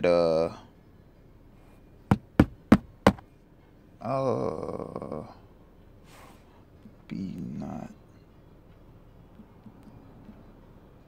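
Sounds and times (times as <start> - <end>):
sharp knocks: 2.1 - 3.2.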